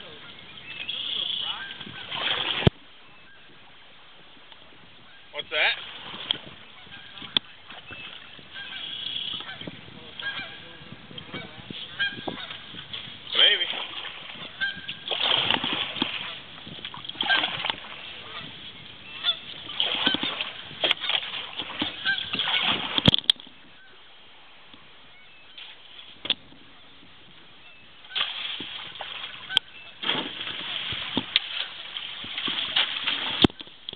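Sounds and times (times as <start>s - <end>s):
birds calling: 0.0s - 2.2s, 6.6s - 13.7s, 14.4s - 15.1s, 17.1s - 22.8s, 29.3s - 30.1s.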